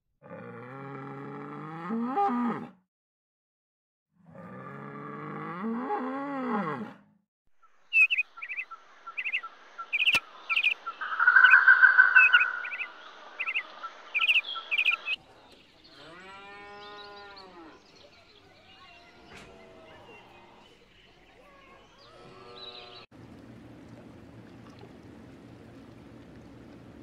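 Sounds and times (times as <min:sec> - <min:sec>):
cow mooing: 0:00.2 - 0:02.8, 0:04.3 - 0:07.0
birds chirping: 0:07.7 - 0:23.1
bird whistle: 0:07.9 - 0:15.2.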